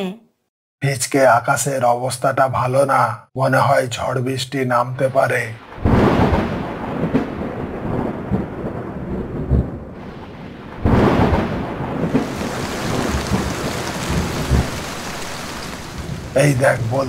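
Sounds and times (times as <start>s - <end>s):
heavy rain: 5.6s - 17.0s
rolling thunder: 5.6s - 17.0s
thunderclap: 5.6s - 17.0s.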